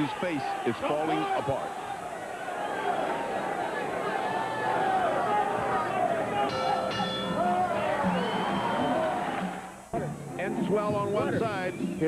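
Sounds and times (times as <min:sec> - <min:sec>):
indistinct voices talking: 0:03.3 - 0:12.0
music with held notes: 0:06.5 - 0:12.0.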